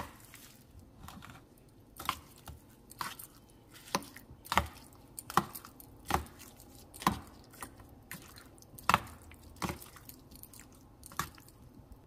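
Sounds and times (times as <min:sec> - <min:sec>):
stirring wet rice: 0:00.0 - 0:12.0.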